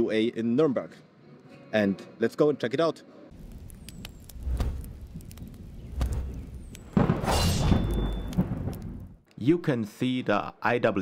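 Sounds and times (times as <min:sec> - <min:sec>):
sharp thuds: 0:04.3 - 0:09.2.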